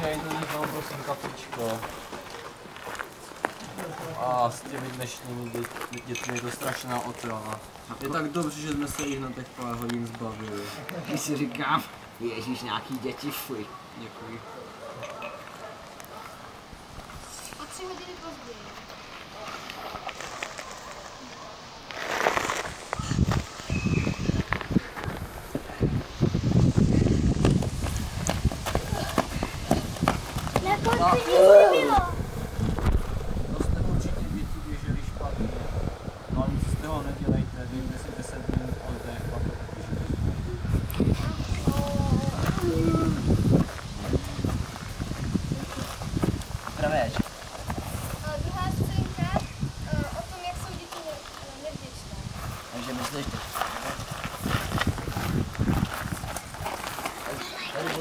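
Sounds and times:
loud rush of noise: 0:22.7 - 0:45.6
children calling: 0:30.5 - 0:32.6
indistinct voices: 0:30.5 - 0:43.5
low thuds and rumble: 0:32.0 - 0:37.6.

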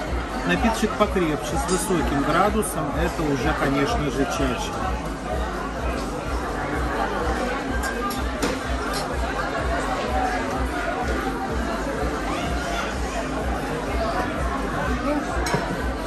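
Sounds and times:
chatter of diners: 0:00.0 - 0:16.0.

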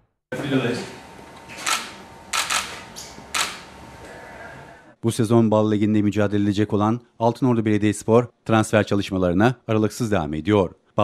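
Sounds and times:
camera shutters clicking: 0:01.5 - 0:03.7.

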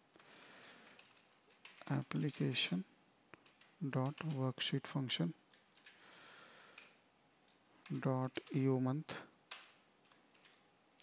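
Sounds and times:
computer keyboard typing: 0:00.4 - 0:02.6, 0:03.4 - 0:04.6, 0:05.5 - 0:06.0, 0:06.7 - 0:08.8, 0:09.5 - 0:10.6
man speaking: 0:01.8 - 0:02.9, 0:03.8 - 0:05.4, 0:07.9 - 0:09.3.

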